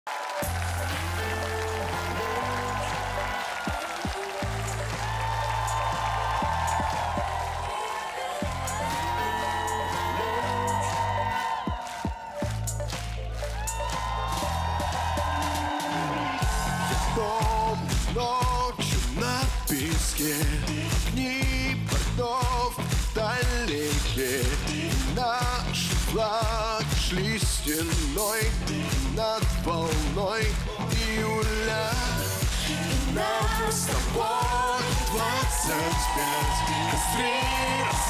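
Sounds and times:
synth chords: 0:00.4 - 0:19.6
bass notes: 0:12.4 - 0:38.0.

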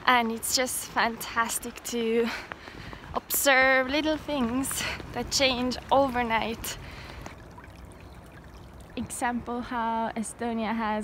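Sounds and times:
faint outdoor background noise: 0:00.0 - 0:11.0.

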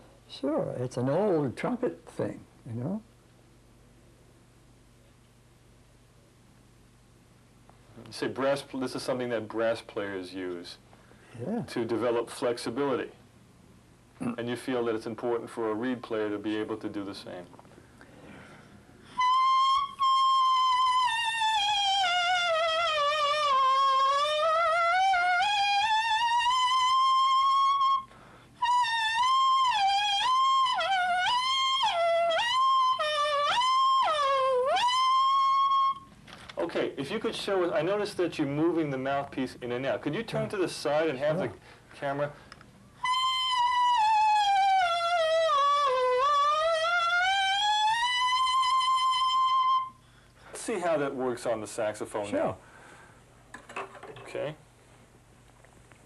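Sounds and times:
clarinet mouthpiece reedy tone: 0:19.1 - 0:36.1, 0:43.0 - 0:50.2
clarinet mouthpiece pitch bending: 0:43.0 - 0:50.0.

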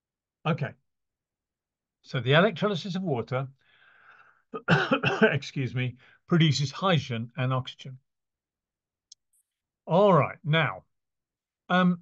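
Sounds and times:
man speaking: 0:00.5 - 0:00.8, 0:04.6 - 0:08.0, 0:09.9 - 0:10.8.

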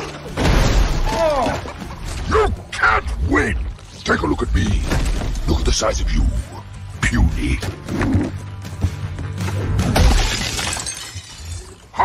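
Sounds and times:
glass shattering: 0:09.9 - 0:11.9.

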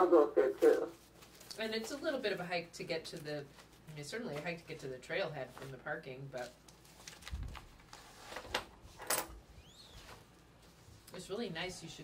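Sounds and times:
paper rustling: 0:00.6 - 0:02.5, 0:05.5 - 0:08.6.

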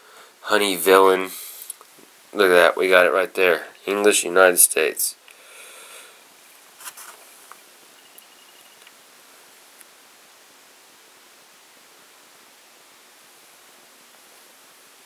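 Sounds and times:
recording hiss: 0:00.0 - 0:15.0.

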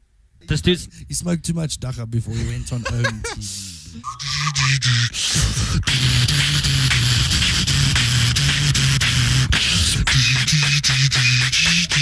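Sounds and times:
beatboxing kick and snare: 0:04.0 - 0:12.0
hummed bass line: 0:04.0 - 0:12.0.

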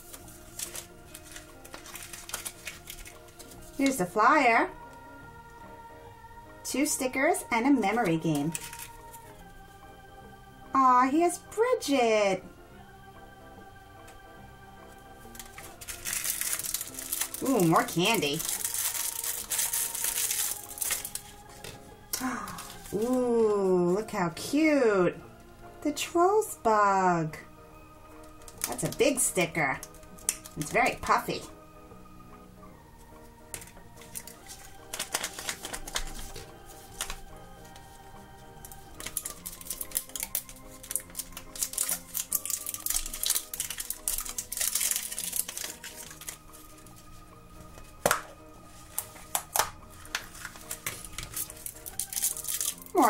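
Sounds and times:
cellophane bag crinkling: 0:00.0 - 0:03.8, 0:08.3 - 0:09.2, 0:15.3 - 0:23.6, 0:28.2 - 0:29.2, 0:33.6 - 0:37.8, 0:38.6 - 0:47.1, 0:48.7 - 0:53.0.

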